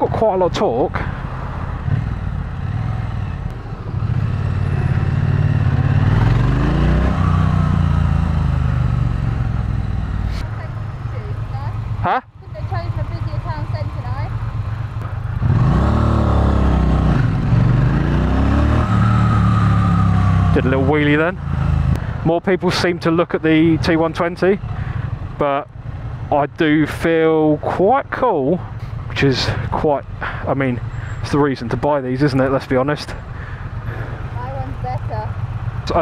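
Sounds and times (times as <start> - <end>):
motorcycle engine accelerating: 0.0 - 36.0.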